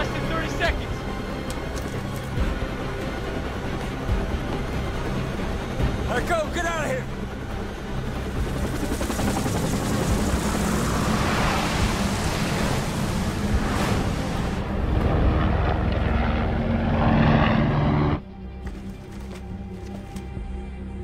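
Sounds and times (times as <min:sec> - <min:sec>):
helicopter rotor and engine: 0:00.0 - 0:18.2
film music: 0:00.0 - 0:21.0.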